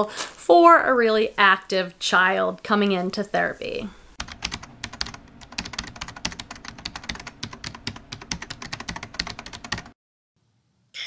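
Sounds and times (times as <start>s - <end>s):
rapid keyboard typing: 4.2s - 10.0s.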